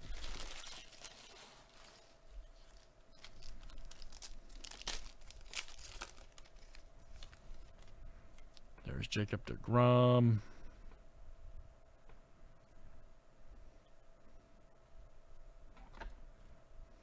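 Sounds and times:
foil wrapper crinkling and tearing: 0:00.0 - 0:08.6.

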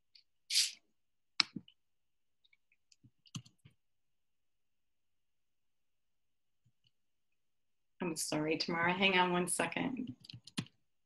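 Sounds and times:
computer clicks and taps: 0:02.9 - 0:03.8, 0:10.0 - 0:10.8.

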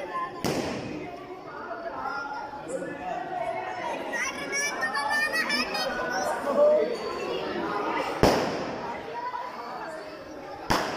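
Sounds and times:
people chattering and calling out: 0:00.0 - 0:10.9
firecracker bang: 0:00.4 - 0:01.1, 0:08.2 - 0:09.0, 0:10.6 - 0:10.9.

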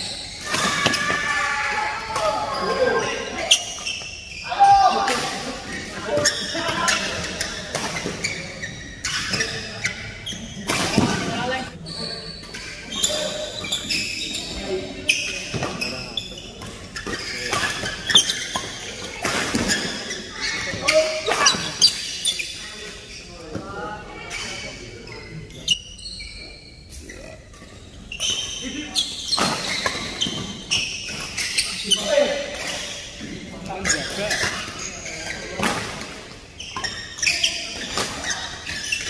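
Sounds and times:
shoes squeaking on court floor: 0:00.0 - 0:01.2, 0:02.2 - 0:04.8, 0:05.7 - 0:39.0
players' voices: 0:00.0 - 0:39.0.

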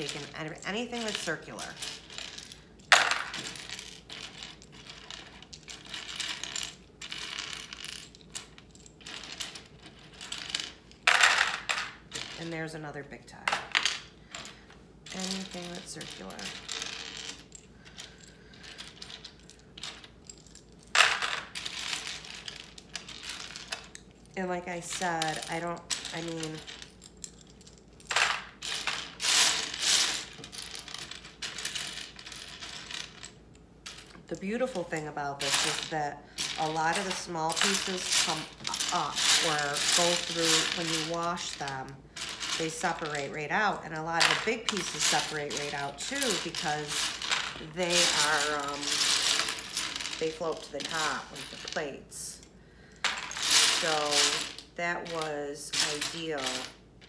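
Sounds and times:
plastic pieces clattering into bowl: 0:13.5 - 0:24.0, 0:28.0 - 0:52.0, 0:53.0 - 0:56.8
hands sifting plastic bricks: 0:28.1 - 0:33.2, 0:33.9 - 0:52.2, 0:53.0 - 0:56.8
plastic bricks clattering: 0:42.2 - 0:51.8.

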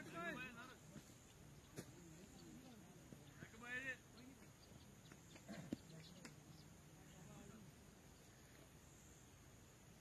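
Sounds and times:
distant murmuring voices: 0:00.0 - 0:10.0.

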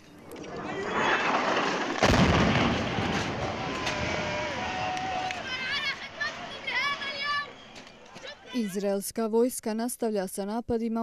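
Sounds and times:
explosion boom and rumble: 0:01.3 - 0:04.9
people's voices: 0:03.8 - 0:11.0.

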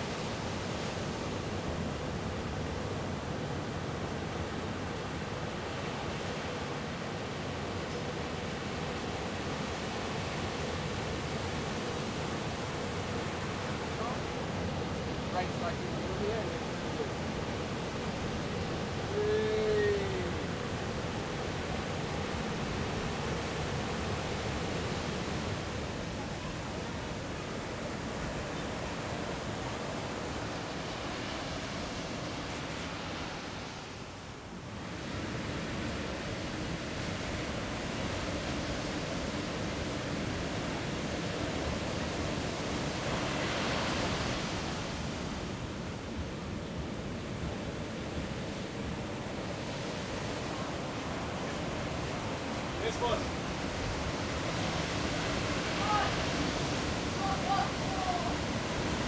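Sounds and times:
waves breaking: 0:00.0 - 0:59.0.

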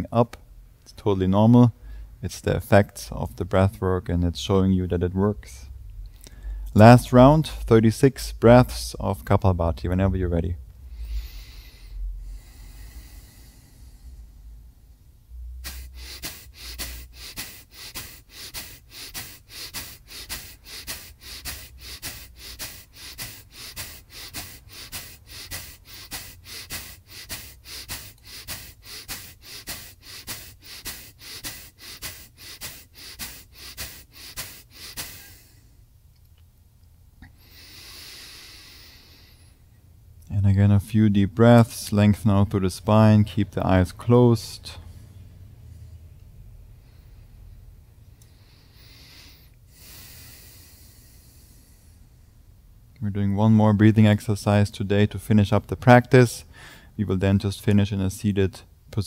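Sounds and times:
slow deep breath: 0:01.8 - 0:02.2, 0:05.7 - 0:06.8, 0:10.8 - 0:35.8, 0:37.2 - 0:39.8, 0:44.7 - 0:52.5, 0:56.4 - 0:57.0
forceful exhales through nose: 0:15.5 - 0:35.7, 0:37.3 - 0:39.6, 0:48.3 - 0:52.0.

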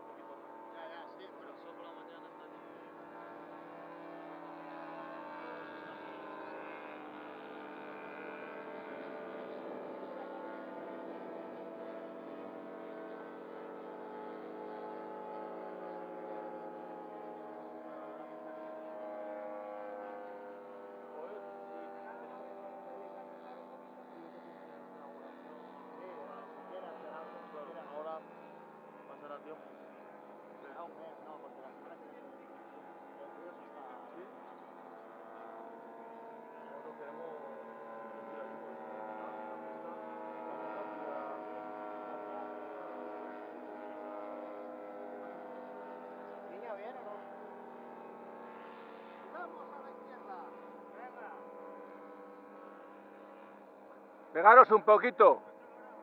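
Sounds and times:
model aircraft engines droning: 0:00.0 - 0:56.0.

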